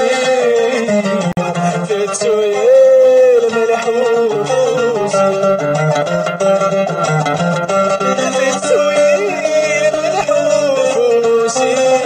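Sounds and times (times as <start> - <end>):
plucked string accompaniment: 0.0 - 12.0
person singing long note: 7.9 - 12.0.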